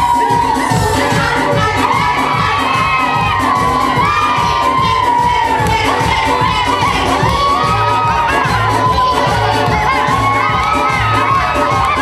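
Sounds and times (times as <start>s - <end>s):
dance music with steady beat: 0.0s - 12.0s
women shouting and cheering: 0.0s - 12.0s.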